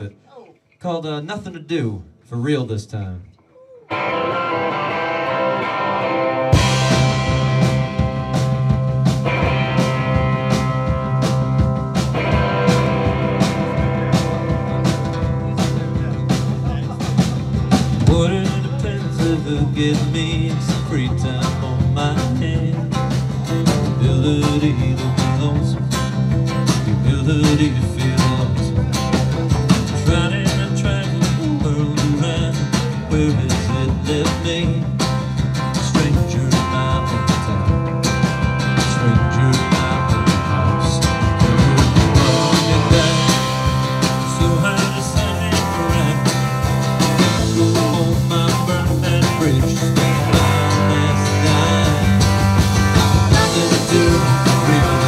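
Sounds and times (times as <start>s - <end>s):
acoustic and electric guitars: 3.6s - 55.0s
steady drum beat: 6.5s - 55.0s
man singing lead vocal: 15.5s - 55.0s.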